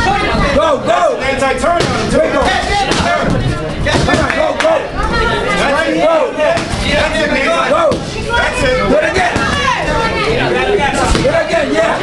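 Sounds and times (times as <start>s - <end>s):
voices shouting and talking: 0.0s - 12.0s.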